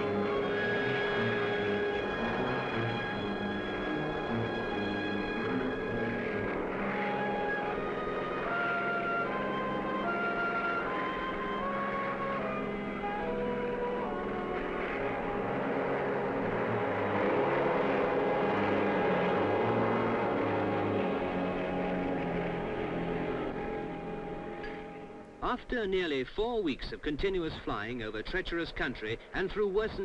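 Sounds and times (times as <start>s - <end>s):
helicopter engine and rotor: 0.0s - 24.6s
slow music score: 0.0s - 26.6s.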